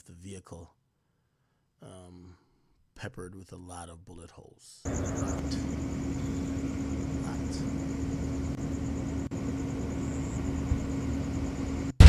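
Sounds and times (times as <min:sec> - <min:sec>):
faint pulsing high whine: 0:04.9 - 0:12.0
steady low hum: 0:04.9 - 0:12.0.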